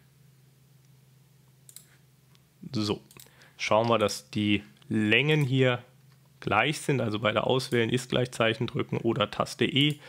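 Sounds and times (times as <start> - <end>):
faint steady hum: 0.0 - 10.0
computer mouse click: 1.7 - 2.0.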